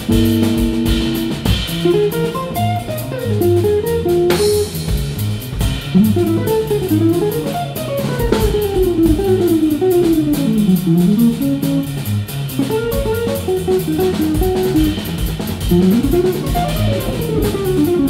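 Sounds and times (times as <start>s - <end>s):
drum kit with cymbals: 0.0s - 18.0s
upright bass: 0.0s - 18.0s.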